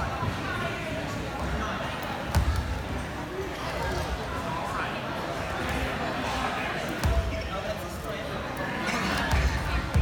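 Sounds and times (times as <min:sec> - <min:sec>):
chatter of voices echoing: 0:00.0 - 0:10.0.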